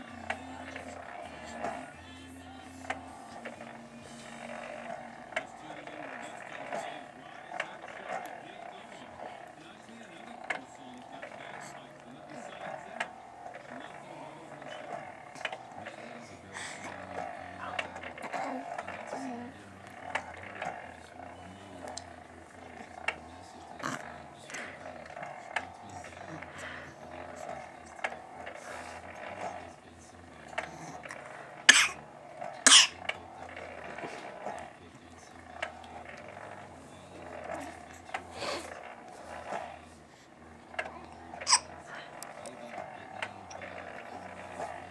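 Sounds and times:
infant cooing and babbling: 13.9s - 20.8s, 30.4s - 33.0s, 36.3s - 38.8s, 40.8s - 44.9s.

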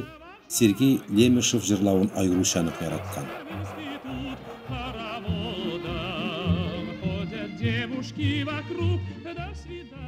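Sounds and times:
operatic singing with vibrato: 0.0s - 10.0s.

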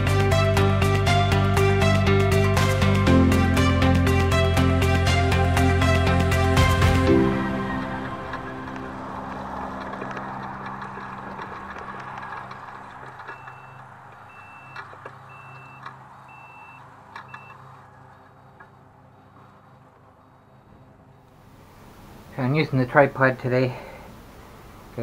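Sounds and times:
background music: 0.0s - 13.3s
scooter reverse beeper: 12.8s - 17.7s.

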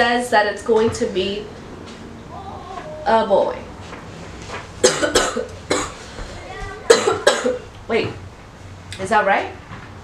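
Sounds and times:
woman coughing: 4.8s - 6.0s, 6.9s - 7.7s.

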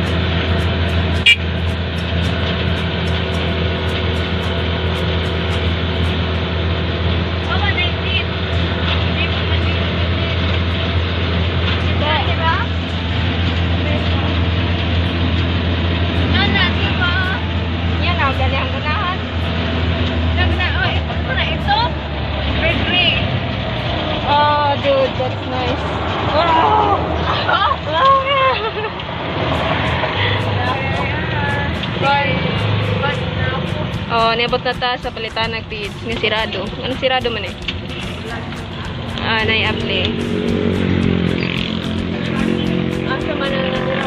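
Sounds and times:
vehicle engine droning: 0.0s - 44.0s.

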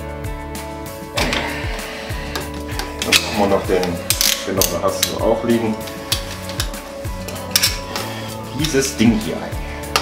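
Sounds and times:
background music with beat: 0.0s - 10.0s
pipe cutter clicking and crunching: 2.2s - 8.8s.

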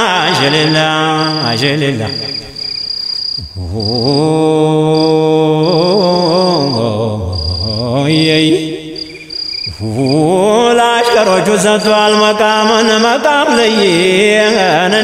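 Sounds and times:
man chanting: 0.0s - 15.0s.

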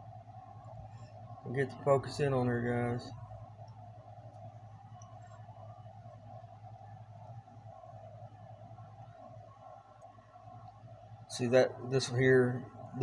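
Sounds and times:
faint steady hum: 0.0s - 13.0s.

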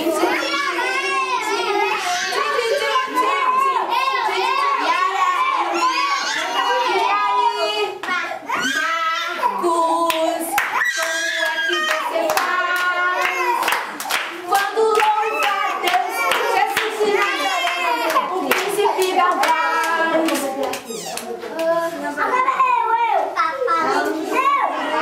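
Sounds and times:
woman and children singing: 0.0s - 1.7s, 2.3s - 22.3s
hand clapping: 10.1s - 21.7s.

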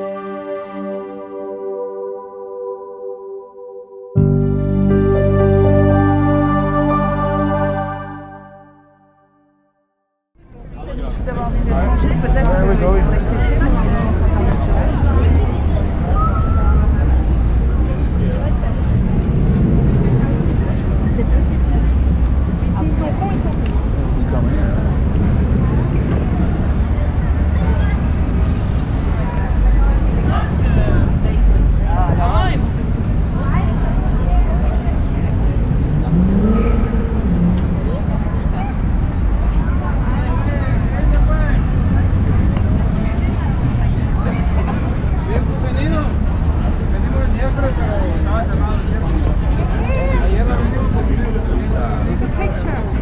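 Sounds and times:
traffic low rumble: 10.4s - 53.0s
voices of passers-by: 10.4s - 53.0s.

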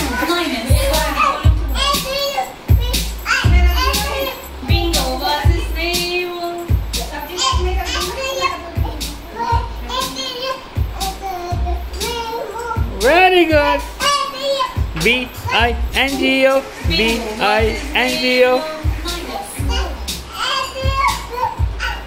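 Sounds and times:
toddler singing: 0.0s - 5.4s, 7.2s - 22.0s.

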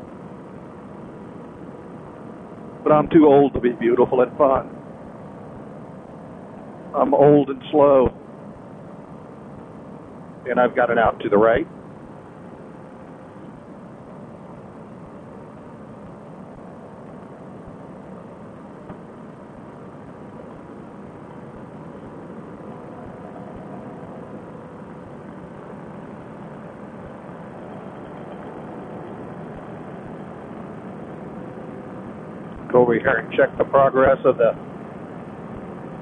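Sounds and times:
paramotor engine drone: 0.0s - 36.0s.

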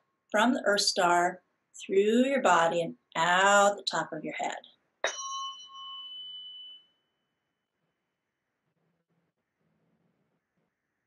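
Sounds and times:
tuning fork ringing: 5.0s - 7.7s.

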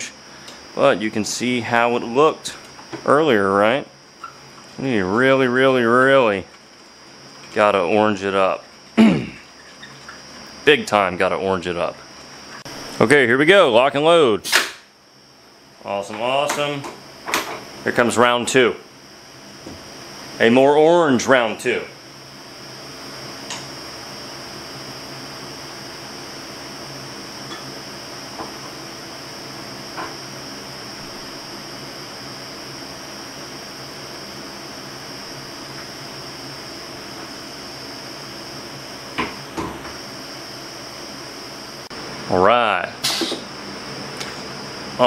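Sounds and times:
machine hum: 0.0s - 45.0s
thin high whine: 0.0s - 45.0s.

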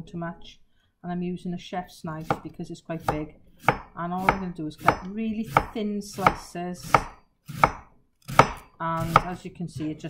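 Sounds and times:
knife slicing cabbage on board: 3.0s - 9.4s.

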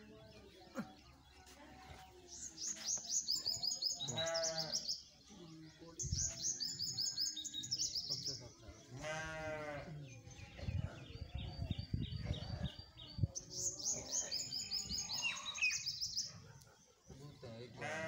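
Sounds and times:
small birds chirping: 0.0s - 18.0s
goat bleating: 9.0s - 9.9s.

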